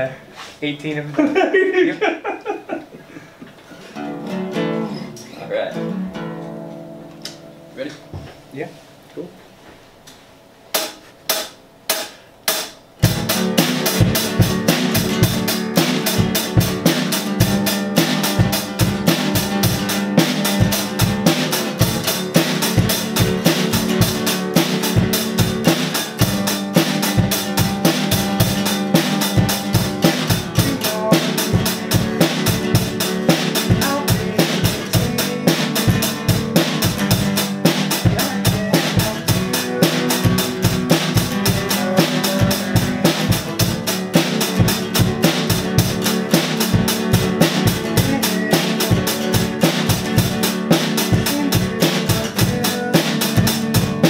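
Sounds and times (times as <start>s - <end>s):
drum kit rock beat: 3.4s - 5.1s, 10.7s - 54.0s
strummed acoustic guitar: 3.7s - 9.0s, 10.7s - 54.0s.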